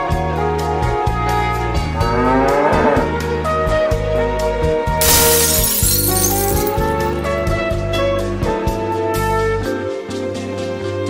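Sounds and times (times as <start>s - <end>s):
glass shattering crash: 5.0s - 7.3s.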